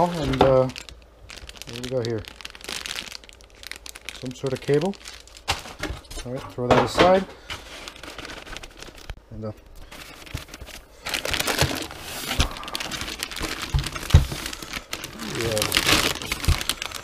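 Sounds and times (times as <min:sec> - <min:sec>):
plastic wrapping crinkling: 0:00.0 - 0:17.0.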